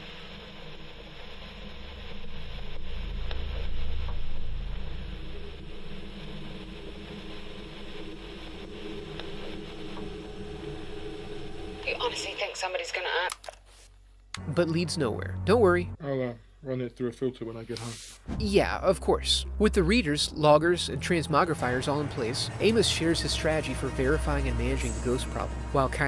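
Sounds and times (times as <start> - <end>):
tape hiss: 0.0 - 13.4
low rumble: 1.4 - 12.5, 18.3 - 26.0.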